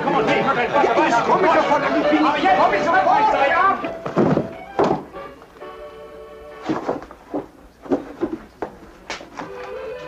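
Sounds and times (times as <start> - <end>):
indistinct chatter of voices: 0.0 - 4.6.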